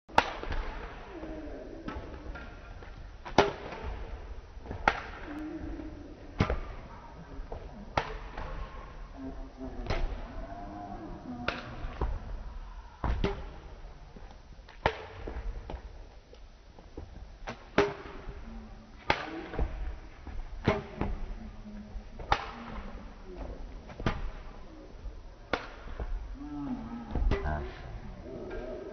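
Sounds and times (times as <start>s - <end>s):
rackets hitting shuttlecock: 0.1s - 1.0s, 1.8s - 5.4s, 6.4s - 6.9s, 7.9s - 8.9s, 11.4s - 12.2s, 13.0s - 13.7s, 14.7s - 15.8s, 17.4s - 18.4s, 19.0s - 21.3s, 22.2s - 23.1s, 25.5s - 26.2s
racket striking shuttlecock: 0.2s - 0.9s, 3.2s - 4.0s, 4.7s - 5.3s, 13.0s - 13.5s, 14.8s - 15.3s, 17.5s - 18.2s, 19.0s - 19.7s.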